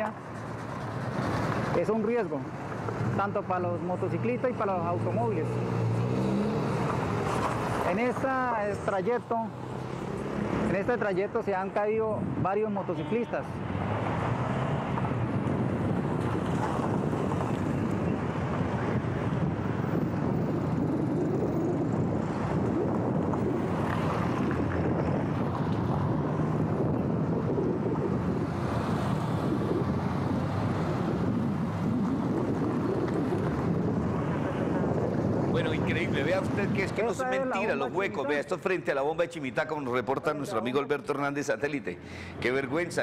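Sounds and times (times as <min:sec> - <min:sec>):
wind rumbling on microphone: 0:00.0 - 0:12.9, 0:13.5 - 0:38.3
motorcycles passing: 0:00.0 - 0:38.5
cars passing: 0:00.0 - 0:43.0
truck passing: 0:05.3 - 0:07.9.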